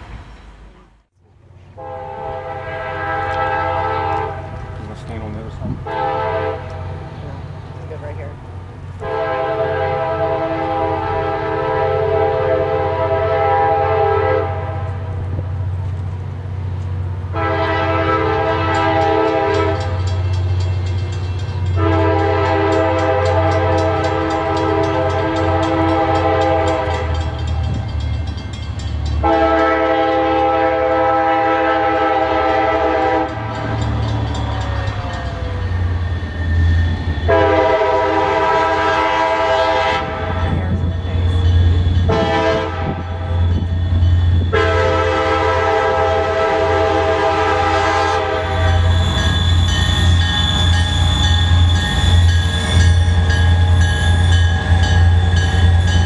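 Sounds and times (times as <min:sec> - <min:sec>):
train rumbling: 0:00.0 - 0:56.0
locomotive air horn blasts: 0:01.8 - 0:04.6, 0:05.8 - 0:07.0, 0:09.0 - 0:15.1, 0:17.3 - 0:20.2, 0:21.7 - 0:27.6, 0:29.2 - 0:33.8, 0:37.3 - 0:40.8, 0:42.0 - 0:43.4, 0:44.4 - 0:51.6.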